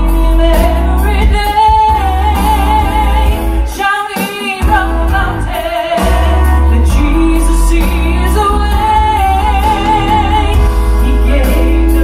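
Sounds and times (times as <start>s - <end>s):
instrumental backing track with bass: 0.0s - 12.0s.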